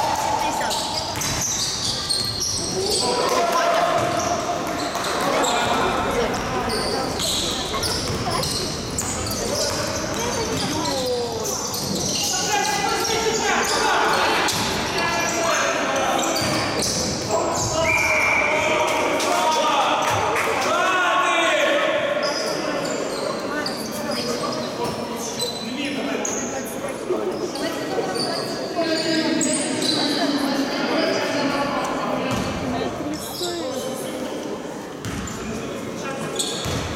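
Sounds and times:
basketball bouncing on gym floor: 0:07.9 - 0:11.0, 0:36.6 - 0:36.9.

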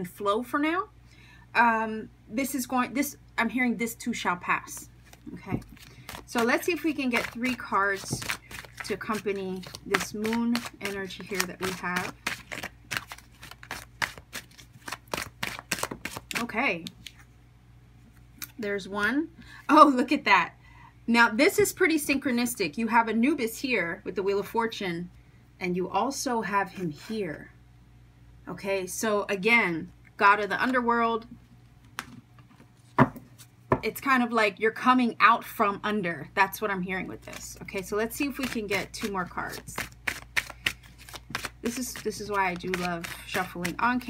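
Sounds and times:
cards being shuffled: 0:04.8 - 0:17.3, 0:37.2 - 0:44.0.

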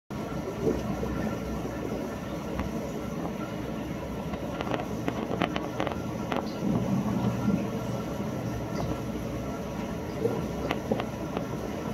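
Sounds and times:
aquarium pump humming: 0:00.1 - 0:11.9
circulating water rushing: 0:00.1 - 0:11.9.

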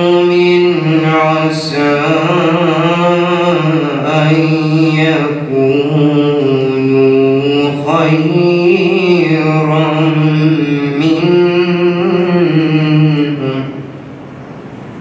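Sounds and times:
man chanting: 0:00.0 - 0:13.9.

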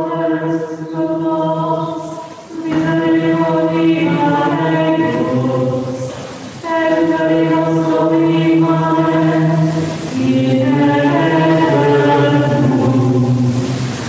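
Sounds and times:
voices chanting in unison: 0:00.0 - 0:13.8.

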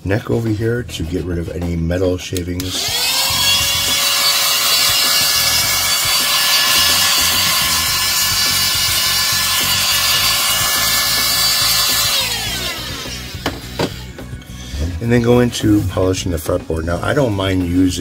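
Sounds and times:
electric air blower whining: 0:02.6 - 0:14.9.

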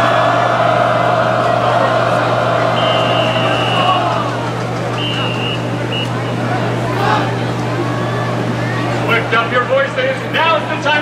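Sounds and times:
marching band holding a chord: 0:00.0 - 0:08.1
stadium crowd noise: 0:00.0 - 0:11.0
steady low hum: 0:00.0 - 0:11.0.

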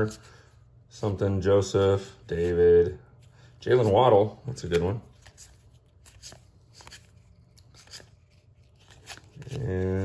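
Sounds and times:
cards rustling and ticking: 0:01.8 - 0:10.0.

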